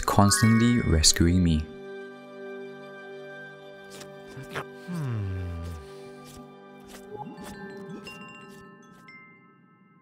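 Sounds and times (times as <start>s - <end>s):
chimes ringing: 0.1s - 1.2s.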